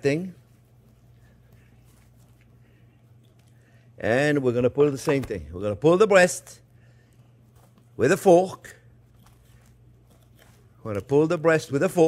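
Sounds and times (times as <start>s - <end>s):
man talking: 0.0s - 0.4s, 4.0s - 6.6s, 8.0s - 8.8s, 10.8s - 12.0s
low steady hum: 0.0s - 12.0s
knife and fork scraping: 9.1s - 10.7s.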